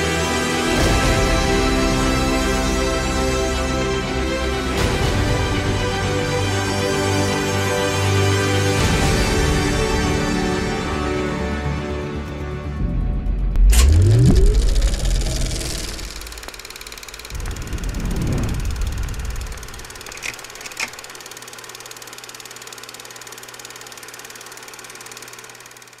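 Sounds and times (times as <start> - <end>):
steady low hum: 13.5 - 22.2
sharp clicks: 13.6 - 26.0
rising sweep and whoosh: 17.3 - 20.0.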